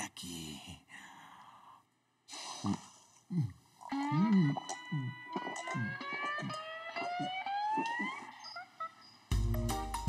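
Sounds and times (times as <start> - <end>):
man gulping a drink: 2.3 - 8.4.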